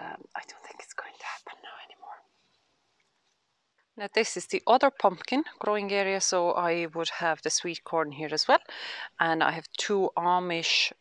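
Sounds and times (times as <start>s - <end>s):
woman's breathy whisper: 0.0s - 2.2s.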